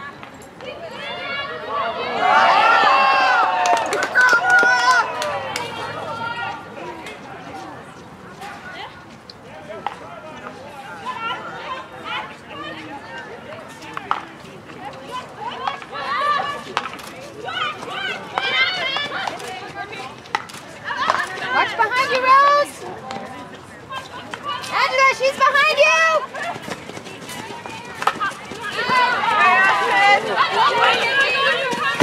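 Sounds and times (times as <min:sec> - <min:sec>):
people talking and calling out: 0:00.0 - 0:32.0
hockey sticks striking ball: 0:26.6 - 0:32.0.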